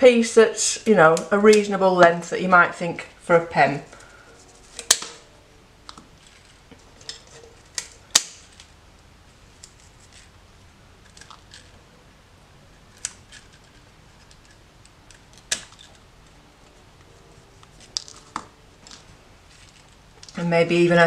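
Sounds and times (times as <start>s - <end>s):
twigs and leaves rustling: 16.6s - 20.4s.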